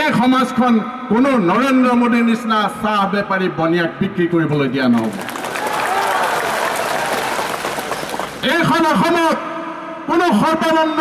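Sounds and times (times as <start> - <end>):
crowd applauding: 5.0 - 8.7.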